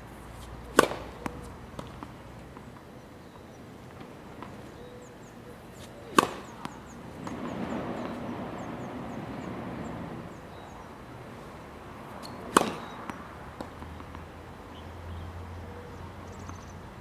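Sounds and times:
tennis racket hitting ball: 0.6s - 2.1s, 5.7s - 8.3s, 12.2s - 14.2s.

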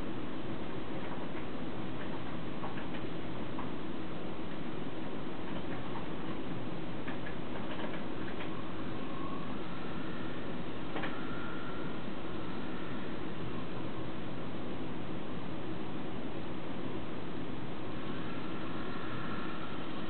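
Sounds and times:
servo ticks and whines: 7.0s - 13.9s, 17.9s - 20.0s
thin steady servo whine: 7.8s - 15.9s, 17.1s - 20.0s.

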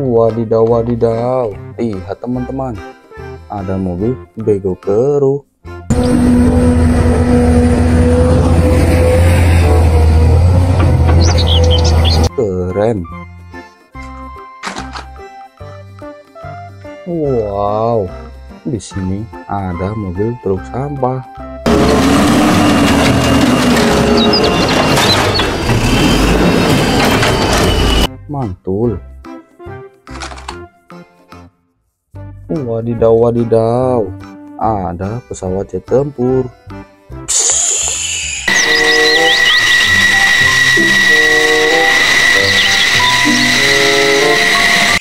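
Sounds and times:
music playing: 0.0s - 31.6s, 32.2s - 45.0s
diesel truck engine running: 5.9s - 12.3s, 21.7s - 28.1s, 38.5s - 45.0s
hydraulic arm hum: 5.9s - 12.3s, 21.7s - 28.1s, 37.3s - 45.0s
short high squeaks: 8.6s - 12.3s, 21.7s - 28.1s, 37.3s - 45.0s.

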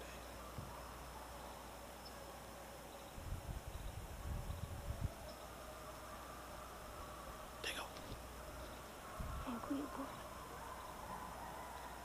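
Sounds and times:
steady low hum: 0.0s - 12.0s
wind rumbling on microphone: 3.1s - 12.0s.

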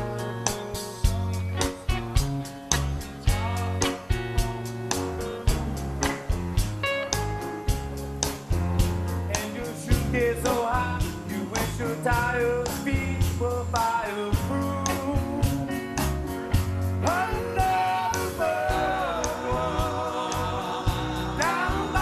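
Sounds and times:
man singing: 0.0s - 2.2s, 3.2s - 5.3s, 9.3s - 15.8s, 17.0s - 22.0s
live rock band: 0.0s - 22.0s.

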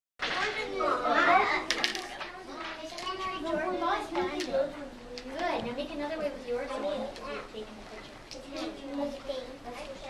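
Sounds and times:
young children talking: 0.2s - 10.0s.

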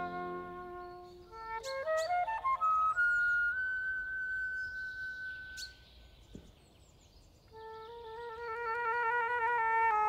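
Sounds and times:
flute playing long high note: 0.0s - 5.4s
faint birdsong: 0.0s - 10.0s
outdoor ambience: 0.0s - 10.0s.

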